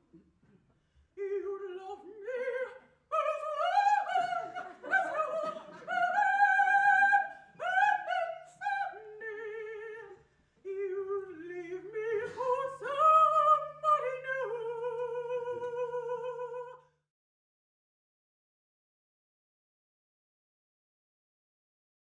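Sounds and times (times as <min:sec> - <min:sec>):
woman singing operatically: 0:01.2 - 0:16.8.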